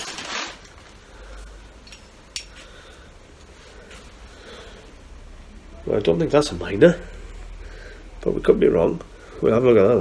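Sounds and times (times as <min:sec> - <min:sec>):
plastic bag handling noise: 0:00.0 - 0:01.5
low steady hum: 0:00.0 - 0:10.0.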